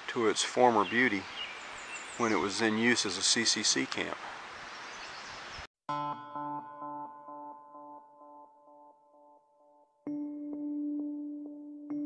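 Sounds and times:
outdoor background hiss: 0.0 - 5.7
instrumental music with held tones: 5.9 - 12.0.

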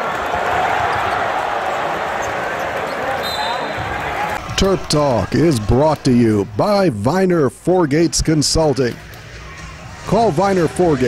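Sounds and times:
arena crowd din: 0.0 - 11.0.

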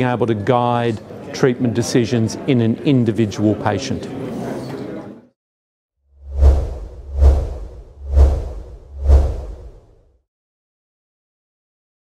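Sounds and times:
whooshes: 6.2 - 10.1.

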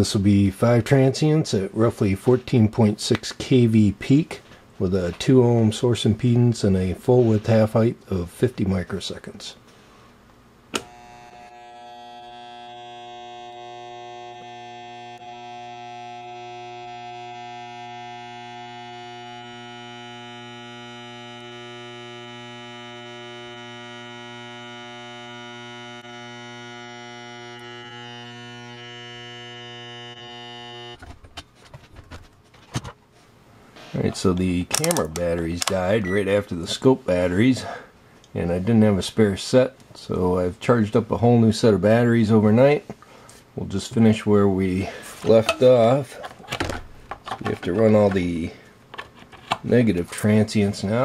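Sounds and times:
generator humming with mains buzz: 10.1 - 33.0, 34.0 - 38.0
clicks: 34.7 - 36.8.

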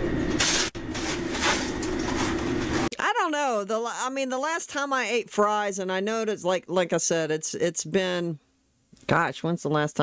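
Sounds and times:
fryer and exhaust hood hum: 0.0 - 2.9
fries rustling: 0.4 - 2.9.

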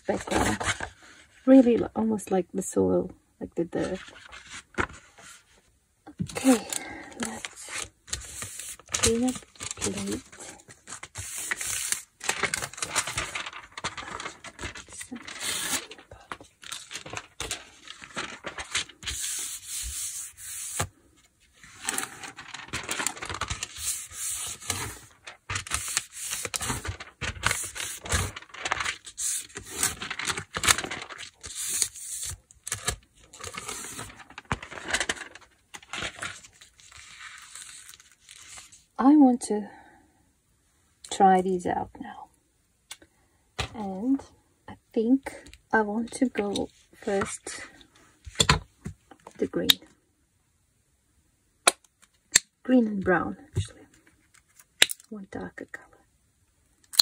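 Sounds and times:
hands rubbing paper: 10.9 - 20.9, 21.6 - 35.4.

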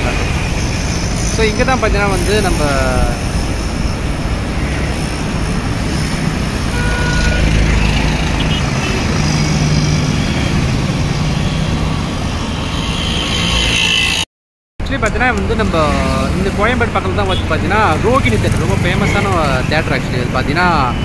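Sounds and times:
road traffic noise: 0.0 - 21.0.

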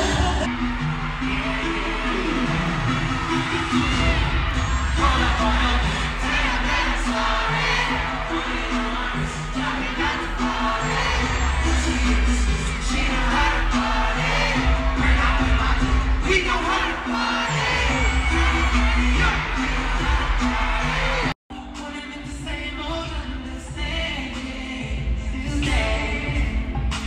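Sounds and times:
heavy bass: 0.0 - 27.0
live pop concert music: 0.0 - 27.0
person singing: 0.0 - 27.0.

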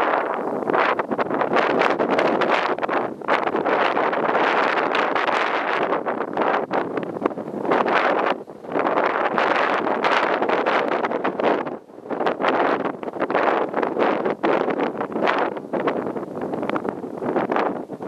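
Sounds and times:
strong gusty wind on microphone: 0.0 - 18.0.

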